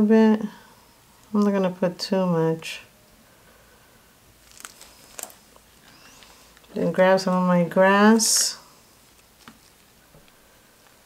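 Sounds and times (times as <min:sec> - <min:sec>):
soap clicks and rustles: 0:04.4 - 0:07.4, 0:09.0 - 0:11.0.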